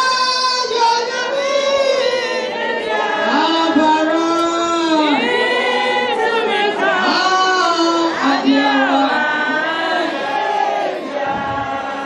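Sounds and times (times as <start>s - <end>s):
women singing together: 0.7s - 12.0s.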